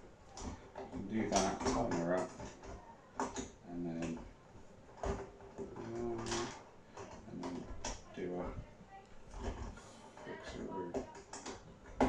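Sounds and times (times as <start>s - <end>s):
plastic parts clicking and knocking: 0.2s - 12.0s.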